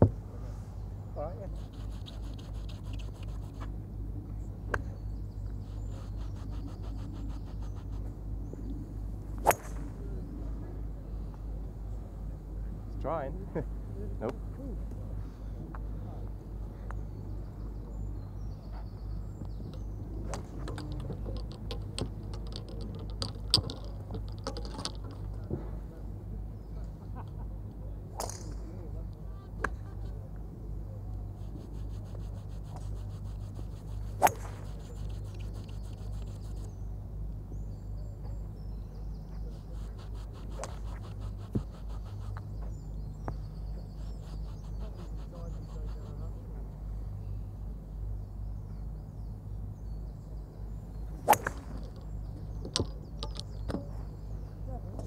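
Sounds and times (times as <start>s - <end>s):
low background hum: 0.0s - 55.0s
golf club striking balls: 9.3s - 10.2s, 19.5s - 25.5s, 28.2s - 28.6s, 34.0s - 36.0s, 51.0s - 54.0s.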